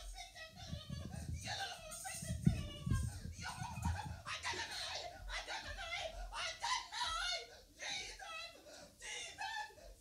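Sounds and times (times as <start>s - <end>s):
people talking: 0.0s - 9.9s
people laughing: 3.3s - 7.3s.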